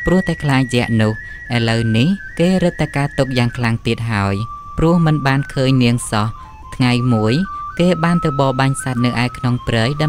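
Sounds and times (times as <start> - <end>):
simple thin melody: 0.0 - 10.0.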